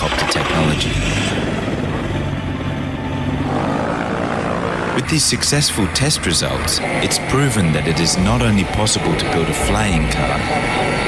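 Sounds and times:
aircraft engine and propeller running: 0.0 - 11.0.

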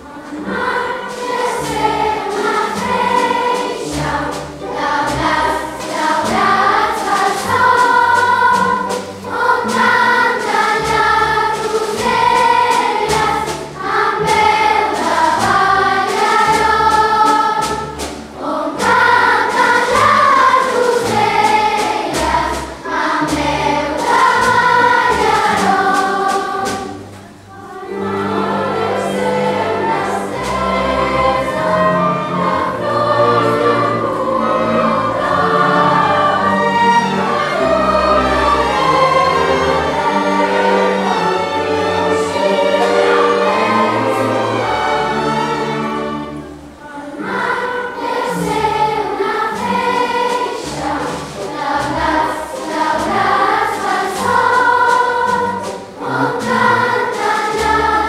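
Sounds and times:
children's choir singing: 0.0 - 58.0
orchestral accompaniment: 0.0 - 58.0.

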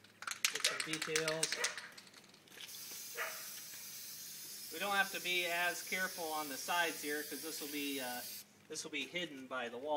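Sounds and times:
aerosol spray hissing: 2.7 - 8.4.

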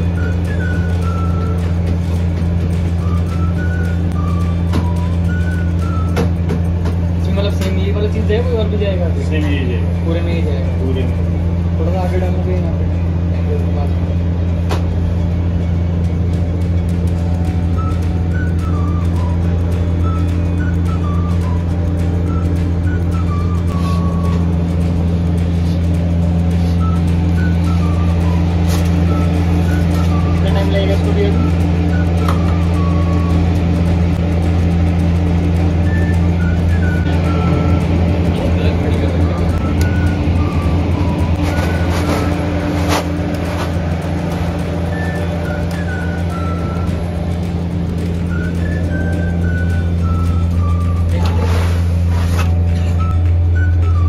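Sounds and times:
faint background music: 0.0 - 54.0
kitchen machinery humming: 0.0 - 54.0.

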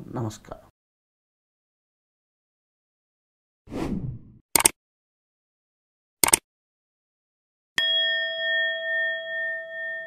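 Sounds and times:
bell chime ringing: 7.8 - 10.0.

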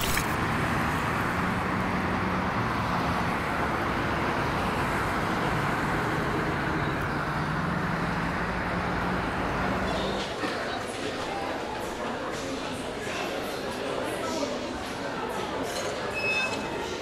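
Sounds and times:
road traffic noise: 0.0 - 17.0.

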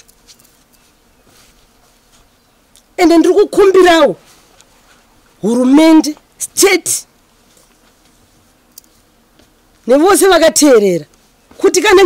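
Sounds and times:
faint insect buzzing: 0.0 - 12.0.

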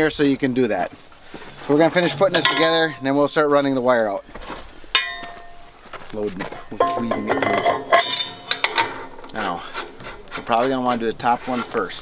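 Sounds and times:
metal clinks and rattles: 1.9 - 3.1, 5.0 - 5.7, 6.8 - 9.4.

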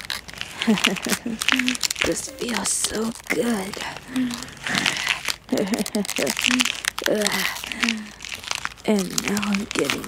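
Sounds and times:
crinkling crunching sound effect: 0.0 - 10.0
person humming and laughing: 0.6 - 4.9, 5.5 - 8.1.

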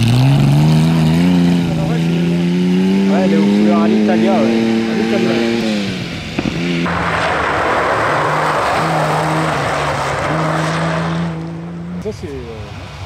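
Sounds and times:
rally car engine at steady revs: 0.0 - 6.9.

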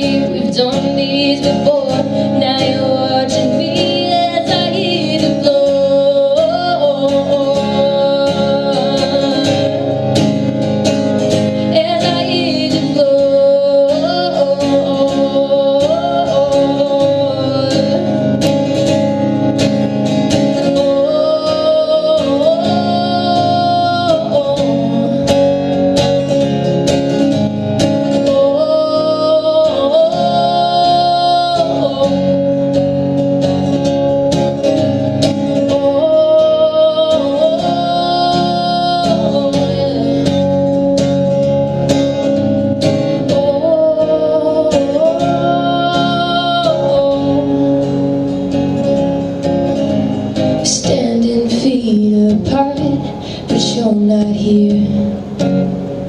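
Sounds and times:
woman singing wordless melody: 0.0 - 19.7, 20.3 - 26.4, 27.8 - 49.1, 49.8 - 55.5
acoustic guitar strumming: 0.0 - 56.0.

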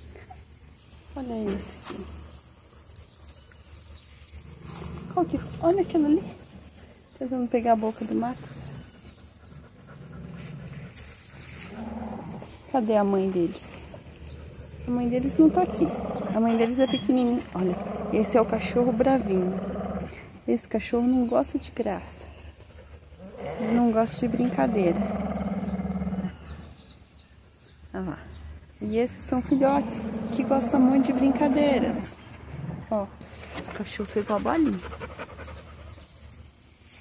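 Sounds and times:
dogs growling low: 3.9 - 7.0, 8.0 - 20.6, 22.1 - 26.9, 29.4 - 33.6.

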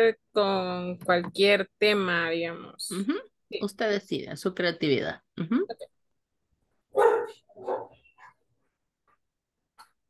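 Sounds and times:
dog barking: 6.9 - 8.3.

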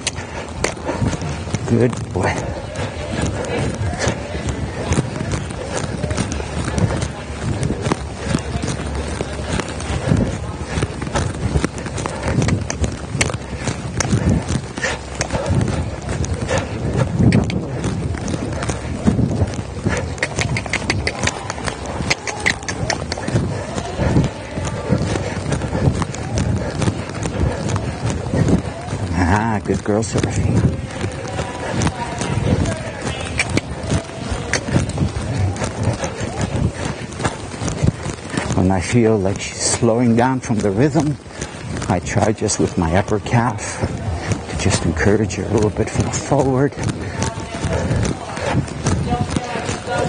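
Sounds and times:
horse hoofbeats on dirt: 0.0 - 50.0.

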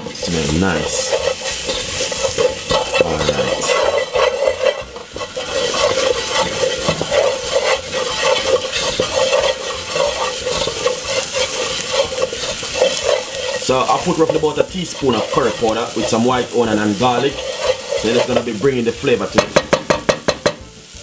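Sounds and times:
wooden spoon scraping pot: 0.0 - 20.4
onions frying in oil: 0.0 - 21.0.

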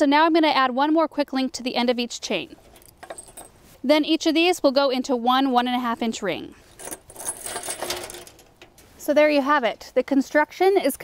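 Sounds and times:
metal chain and ring clinking: 2.6 - 3.6, 6.6 - 8.6.

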